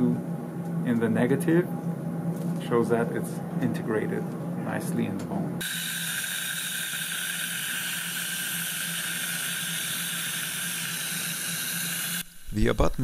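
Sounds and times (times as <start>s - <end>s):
dental drill with water spray: 5.6s - 12.5s.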